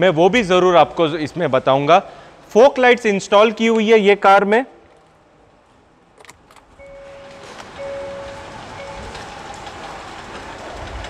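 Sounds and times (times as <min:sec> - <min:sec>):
car engine starting and running: 0:06.2 - 0:10.8
chime: 0:06.8 - 0:09.3.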